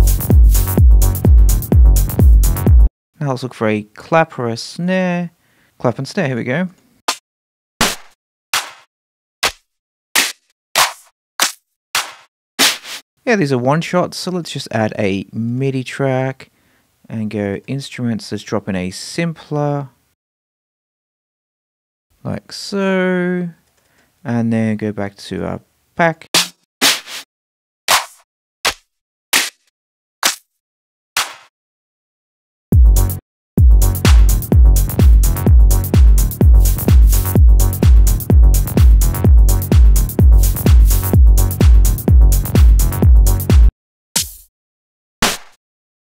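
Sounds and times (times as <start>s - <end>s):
clap and snare samples: 7.8s - 13.0s, 26.4s - 27.3s, 27.9s - 30.5s, 31.2s - 31.5s, 34.1s - 34.4s, 36.8s - 38.0s, 45.2s - 45.6s.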